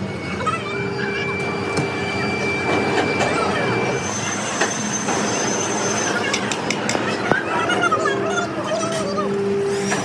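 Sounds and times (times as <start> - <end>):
workshop machinery whining: 0.0 - 10.0.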